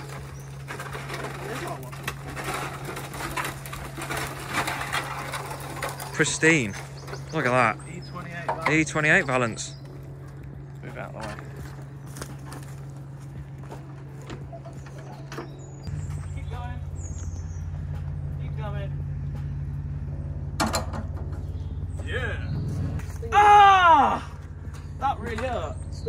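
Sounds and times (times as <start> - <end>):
vehicle engine idling: 0.0 - 26.0.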